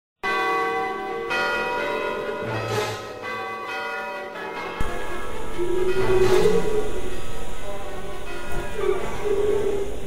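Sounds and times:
bell tones ringing: 0.2s - 10.0s.

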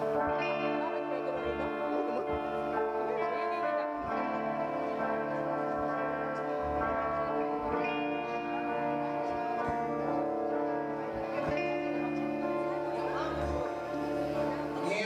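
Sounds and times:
electric guitars playing chords: 0.0s - 15.0s.

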